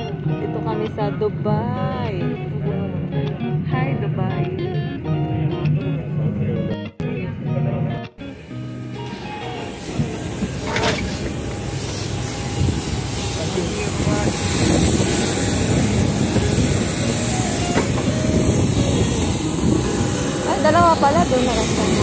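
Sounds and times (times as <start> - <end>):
faint high whine: 8.2 - 22.0
rumbling airport apron noise: 8.3 - 22.0
person speaking: 20.4 - 22.0.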